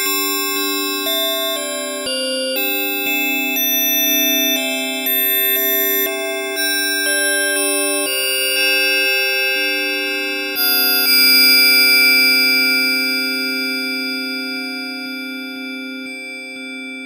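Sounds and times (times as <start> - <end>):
bell-like synthesizer chord: 0.0 - 17.0.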